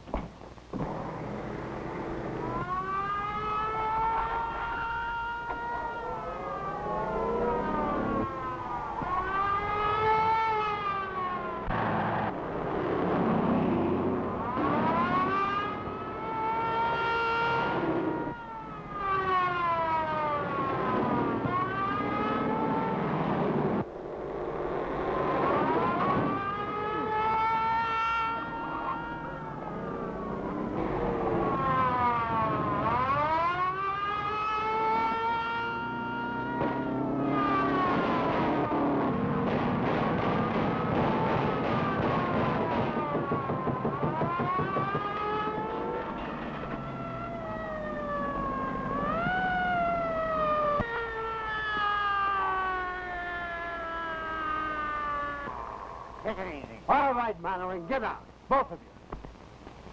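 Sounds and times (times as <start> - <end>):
moving car: 0.0 - 56.3
police siren wailing: 0.8 - 56.9.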